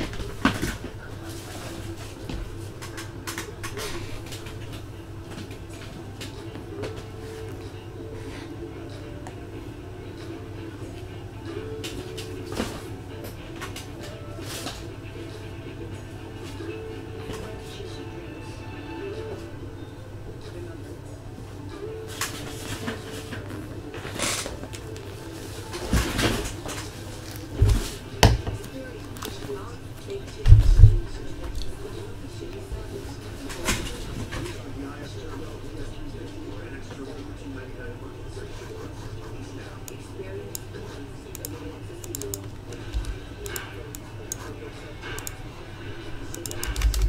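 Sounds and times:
background music: 0:00.0 - 0:36.8
faint background talk: 0:00.0 - 0:47.0.

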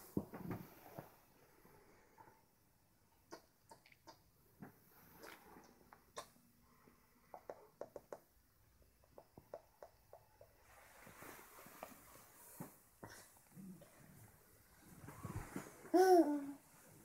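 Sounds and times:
bedding rustling: 0:10.7 - 0:13.0, 0:14.0 - 0:16.0.

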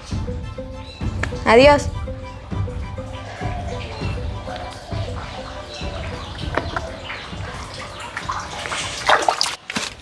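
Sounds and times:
water splashing in a basin: 0:03.5 - 0:10.0.

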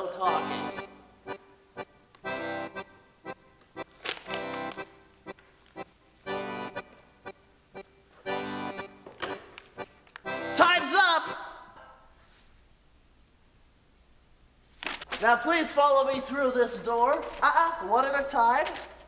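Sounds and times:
person's voice: 0:00.0 - 0:00.8, 0:10.5 - 0:11.7, 0:15.2 - 0:19.0
accordion music: 0:00.0 - 0:11.6.

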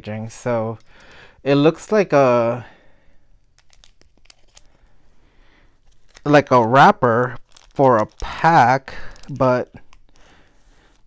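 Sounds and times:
wrapper crinkling: 0:03.4 - 0:05.0, 0:05.7 - 0:11.0.

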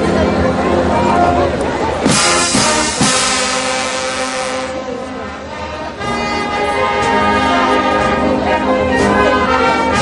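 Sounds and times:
brass band playing chords: 0:00.0 - 0:10.0.

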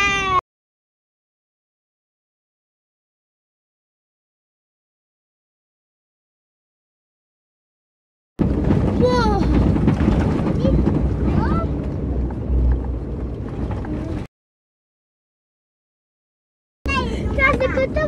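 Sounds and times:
child calling out: 0:00.0 - 0:00.4
engine and road rumble in car: 0:08.4 - 0:14.3, 0:16.9 - 0:18.0
voices: 0:09.0 - 0:11.9, 0:16.9 - 0:18.0.

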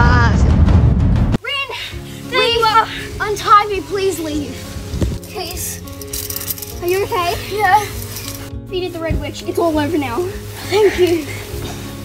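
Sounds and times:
background music with held chords: 0:01.3 - 0:12.0
child speaking: 0:01.4 - 0:04.6, 0:05.3 - 0:05.8, 0:06.8 - 0:08.0.

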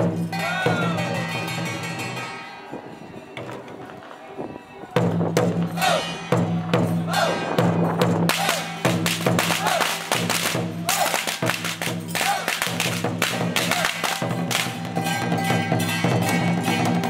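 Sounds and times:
drum beat: 0:05.0 - 0:17.0.

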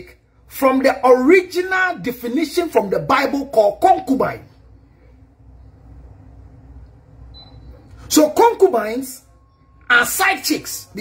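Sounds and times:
low steady hum: 0:00.0 - 0:11.0
faint short high tone: 0:09.3 - 0:09.9.

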